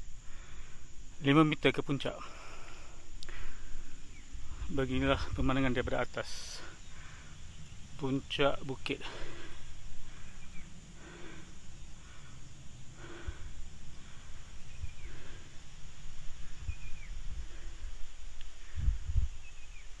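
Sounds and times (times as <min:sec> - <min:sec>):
low rumble on microphone: 0:02.5 - 0:20.0
soft breath-like puffs: 0:09.0 - 0:19.7.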